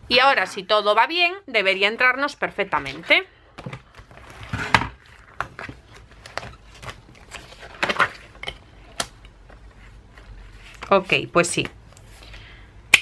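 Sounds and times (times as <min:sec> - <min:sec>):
paper rustling: 0:03.6 - 0:08.4, 0:09.4 - 0:12.4.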